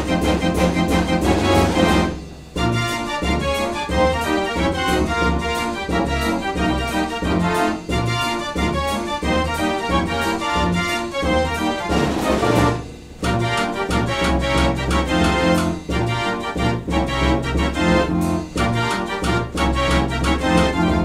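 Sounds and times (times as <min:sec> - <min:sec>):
dance organ playing a tune: 0:00.0 - 0:21.0.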